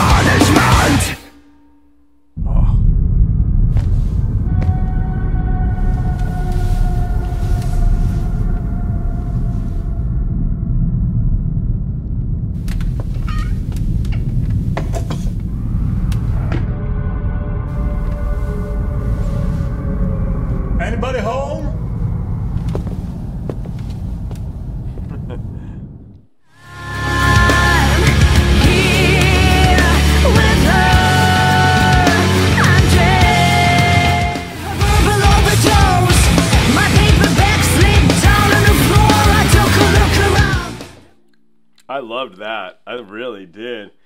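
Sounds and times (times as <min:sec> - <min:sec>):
wavering vocal sound: 0:00.0 - 0:01.7, 0:26.6 - 0:41.2
low rumbling drone: 0:00.0 - 0:41.9
long held tones: 0:04.4 - 0:11.1, 0:15.5 - 0:23.6
person's voice: 0:20.8 - 0:21.8, 0:41.8 - 0:44.0.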